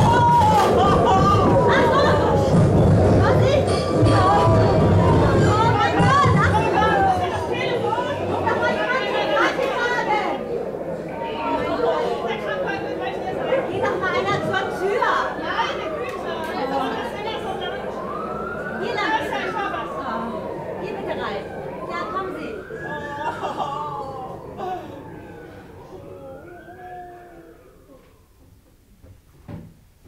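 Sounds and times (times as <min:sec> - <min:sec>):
siren-like wail: 0:00.0 - 0:09.6, 0:12.8 - 0:28.5
audience murmuring and chatting: 0:00.0 - 0:28.9.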